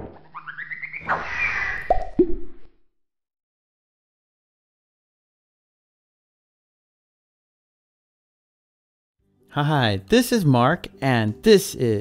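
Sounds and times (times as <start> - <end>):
cartoon swish: 0.0 - 2.7
cartoon plopping pops: 1.8 - 2.6.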